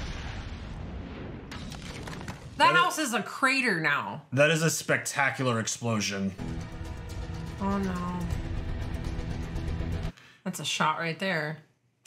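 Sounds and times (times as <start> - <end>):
deep explosion blast: 0.0 - 2.6
debris crackling: 0.0 - 3.0.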